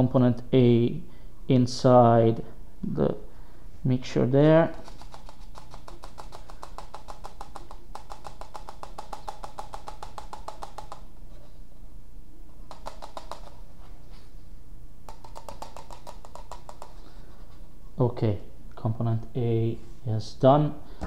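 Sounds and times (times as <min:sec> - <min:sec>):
plastic cups clicking and creaking: 0:04.8 - 0:11.0.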